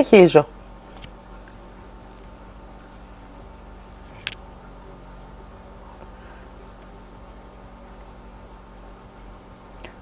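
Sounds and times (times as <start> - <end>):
low steady hum: 0.0 - 10.0
crochet hook squeaking on mesh: 2.4 - 2.9.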